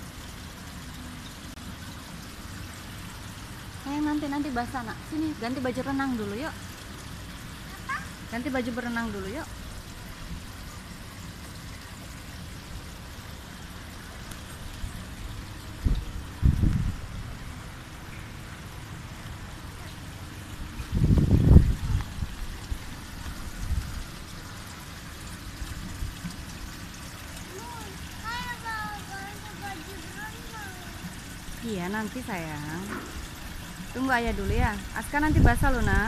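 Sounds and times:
water trickling: 0.0 - 36.0
small child's voice: 7.6 - 8.4, 19.6 - 20.3, 27.4 - 31.3.

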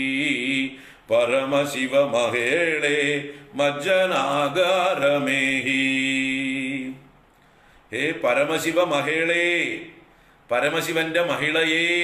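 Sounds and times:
man chanting melodic verse: 8.0 - 12.0.

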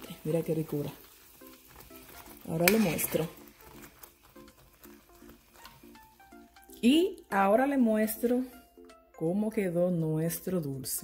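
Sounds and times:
faint light melody: 0.0 - 11.0.

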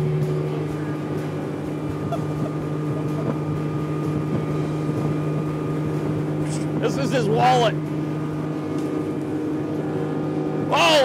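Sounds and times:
outboard motor drone: 0.0 - 11.0
wind and water rushing: 0.0 - 11.0.

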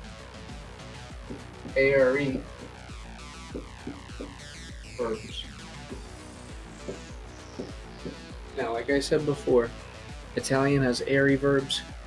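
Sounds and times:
faint background music: 0.0 - 12.0
marker squeaking on whiteboard: 1.3 - 2.8, 3.5 - 4.5, 6.7 - 8.3.

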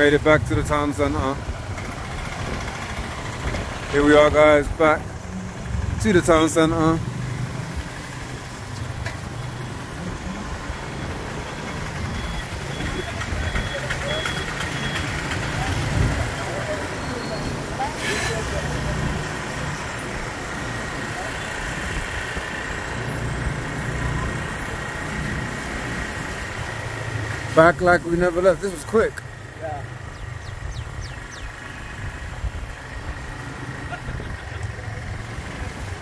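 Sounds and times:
motorcycle engine running: 0.0 - 28.5, 29.2 - 36.0
road and traffic noise: 0.0 - 36.0.

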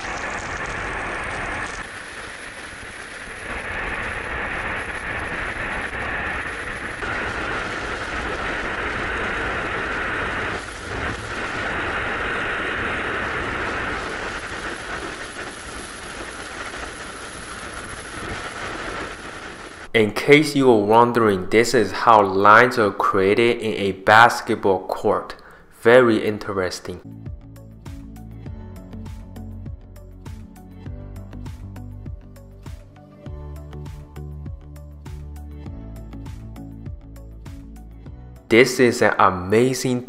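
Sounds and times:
rushing roar of air: 0.0 - 20.2.

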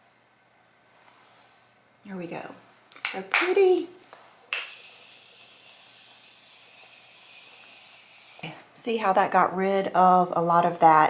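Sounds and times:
spray misting hiss: 4.5 - 8.5.

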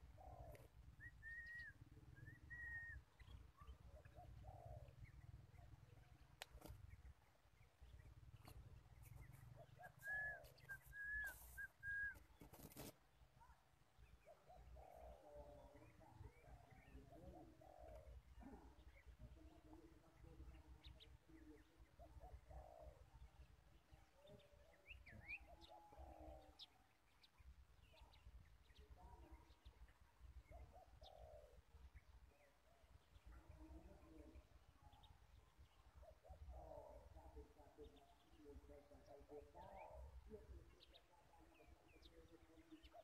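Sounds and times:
dove cooing: 0.0 - 3.0, 3.6 - 5.5, 9.2 - 12.9, 14.3 - 18.8, 22.0 - 23.2, 30.5 - 31.6, 36.0 - 37.6
small birds chirping: 0.0 - 43.0.

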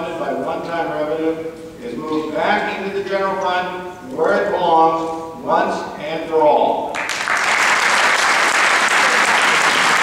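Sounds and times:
man speaking into a microphone: 0.0 - 6.9.

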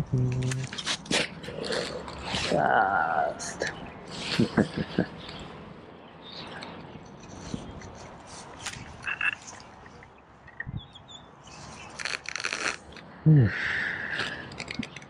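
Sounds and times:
frogs croaking: 8.8 - 12.2.

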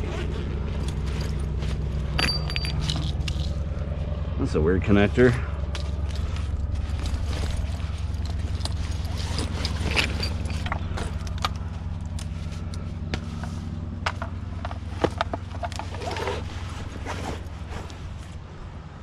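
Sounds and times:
low mechanical hum: 0.0 - 19.0.

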